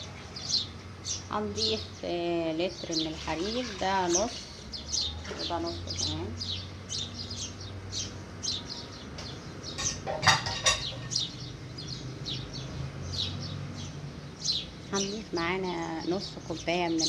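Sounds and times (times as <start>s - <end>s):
small birds chirping: 0.0s - 17.0s.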